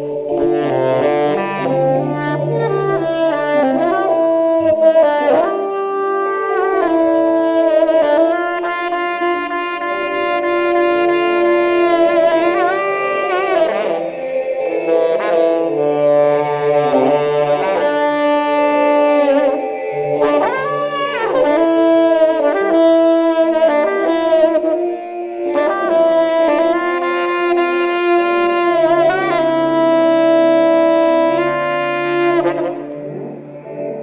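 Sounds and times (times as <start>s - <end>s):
saxophone lead line: 0.0s - 34.0s
space-rock music: 9.8s - 34.0s.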